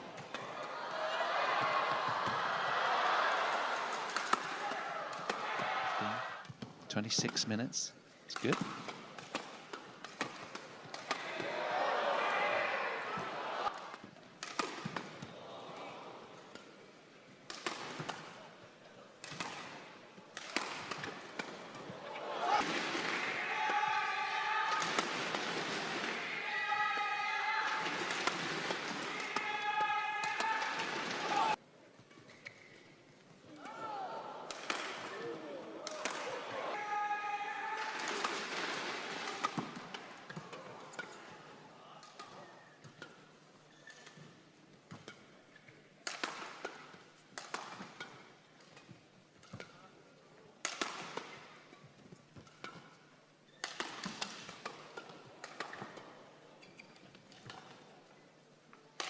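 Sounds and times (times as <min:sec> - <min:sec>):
crowd shouting and cheering: 0:00.0 - 0:06.5, 0:10.9 - 0:14.0, 0:21.8 - 0:31.6, 0:33.5 - 0:40.8
rackets striking shuttlecock: 0:08.3 - 0:11.5, 0:13.7 - 0:15.3, 0:17.5 - 0:18.4, 0:19.2 - 0:23.9, 0:34.5 - 0:35.2, 0:35.8 - 0:36.3, 0:46.0 - 0:49.8, 0:50.6 - 0:51.4, 0:53.6 - 0:56.1.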